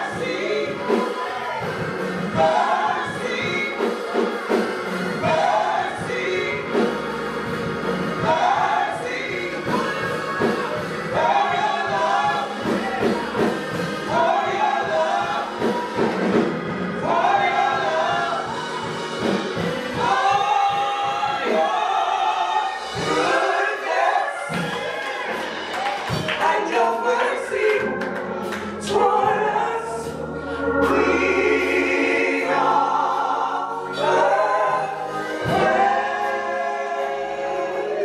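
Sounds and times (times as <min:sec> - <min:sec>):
gospel singing voices: 0:00.0 - 0:38.0.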